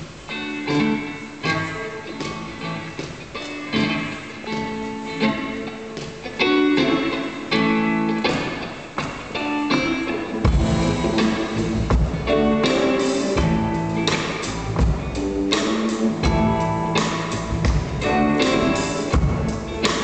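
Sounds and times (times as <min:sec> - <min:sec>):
electric guitar strumming chords: 0:00.0 - 0:20.0.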